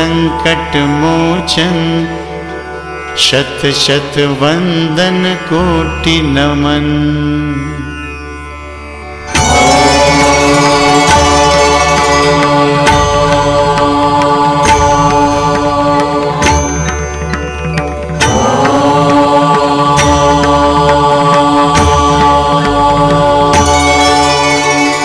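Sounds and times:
devotional music with drone and beat: 0.0 - 7.9, 8.5 - 25.0.

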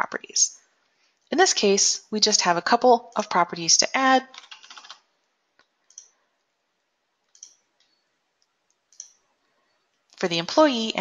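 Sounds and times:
computer mouse clicks: 5.6 - 6.2, 7.2 - 9.2.

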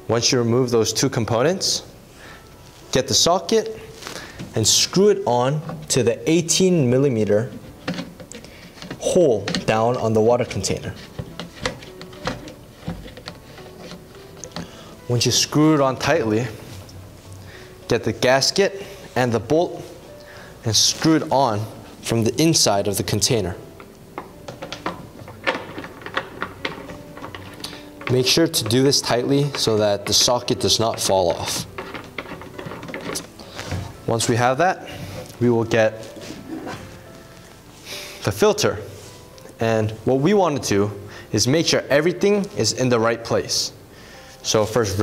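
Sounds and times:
plastic parts clicking and knocking: 7.5 - 14.7, 23.8 - 34.0
plastic clicks and scrapes: 24.5 - 28.2, 30.9 - 33.7.

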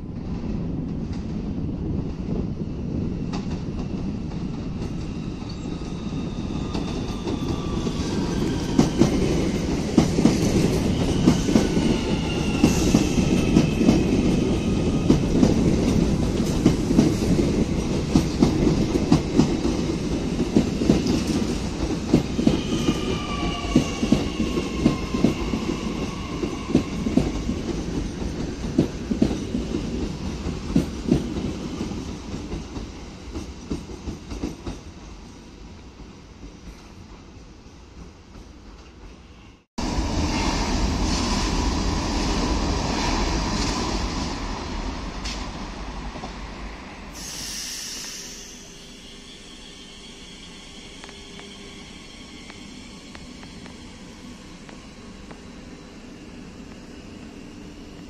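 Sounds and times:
low train rumble: 0.0 - 58.0.

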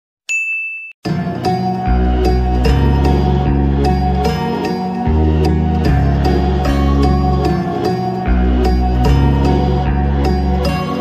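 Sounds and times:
electronic ding: 0.3 - 1.0
background music: 1.1 - 11.0
deep bass: 1.4 - 11.0.

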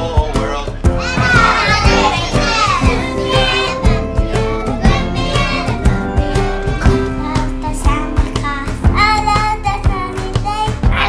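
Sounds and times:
backing music with steady beat: 0.0 - 11.0
child singing: 1.0 - 11.0.

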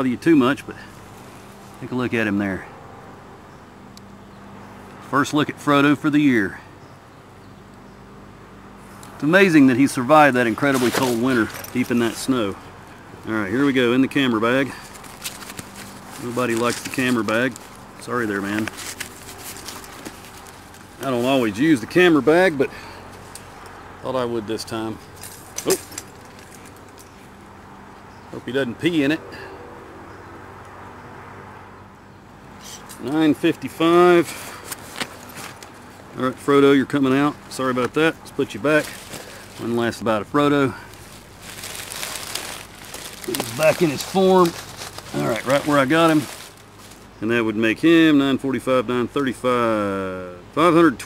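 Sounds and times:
low outdoor background rumble: 0.0 - 51.0.

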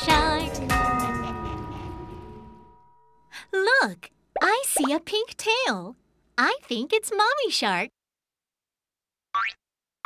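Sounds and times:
cartoon boing: 9.4 - 9.6.

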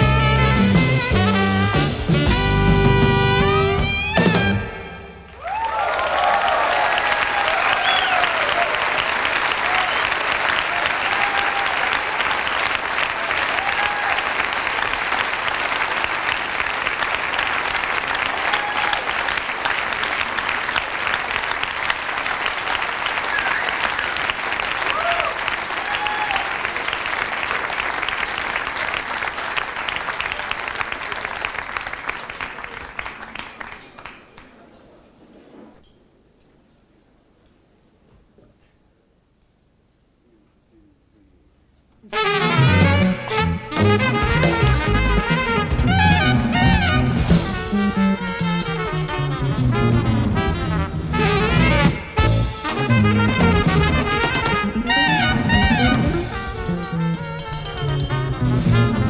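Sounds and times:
audience cheering: 5.2 - 33.4
audience applauding: 5.3 - 34.9, 51.6 - 56.7
music tune: 42.2 - 59.0.

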